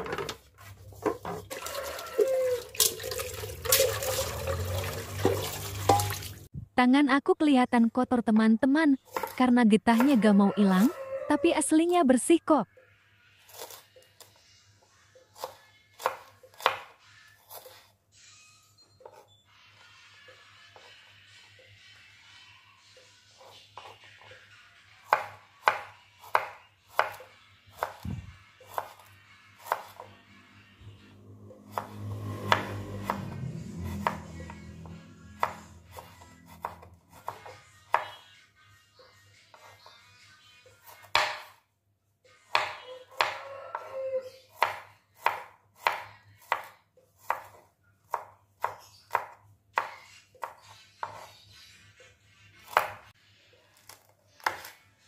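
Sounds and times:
knife slicing garlic on wooden board: 0:09.1 - 0:10.2, 0:13.5 - 0:14.3, 0:15.4 - 0:17.9, 0:25.1 - 0:30.1, 0:31.7 - 0:34.6, 0:35.4 - 0:38.3, 0:40.8 - 0:41.6, 0:42.5 - 0:51.4, 0:52.6 - 0:53.1, 0:53.8 - 0:54.8.

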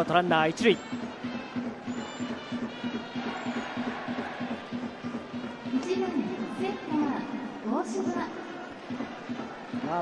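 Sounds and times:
crowd noise: 0:00.0 - 0:10.0
stadium music: 0:00.0 - 0:10.0.

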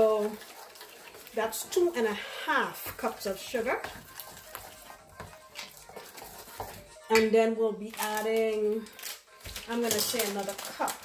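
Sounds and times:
spoon scraping metal bowl: 0:00.0 - 0:07.3
metal spoon stirring batter: 0:00.0 - 0:11.0.

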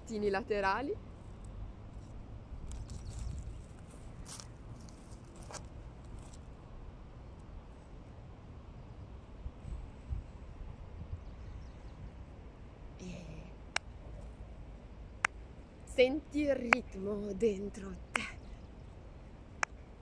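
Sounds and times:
steady low rumble: 0:00.0 - 0:20.0.

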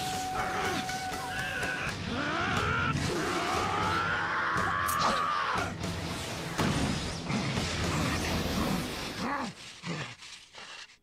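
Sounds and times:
beastlike growling snarls: 0:07.3 - 0:11.0.

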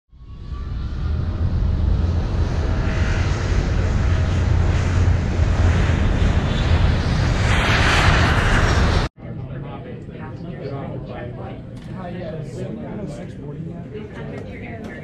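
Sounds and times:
aircraft engine rumble: 0:00.2 - 0:09.5.

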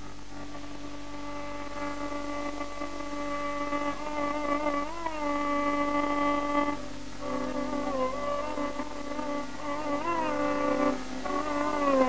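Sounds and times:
long held melodic note: 0:00.0 - 0:12.0
low mains hum: 0:00.0 - 0:12.0
quiet drone: 0:00.0 - 0:12.0.

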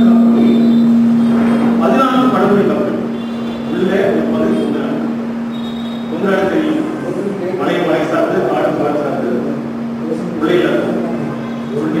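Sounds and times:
man lecturing over loudspeaker: 0:00.0 - 0:01.0, 0:01.7 - 0:05.2, 0:06.0 - 0:12.0.

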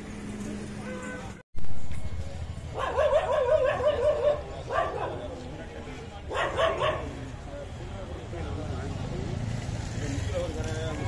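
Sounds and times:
passers-by talking: 0:00.4 - 0:11.0
dog barking: 0:02.8 - 0:05.4, 0:06.3 - 0:07.2.

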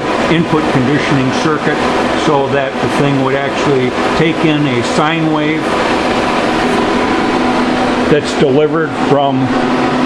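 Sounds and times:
cooling fans whirring: 0:00.0 - 0:10.0.

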